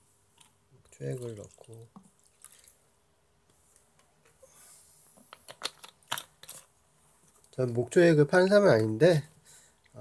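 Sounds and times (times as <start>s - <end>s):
liquid trickling into plastic cup: 0.9s - 2.8s.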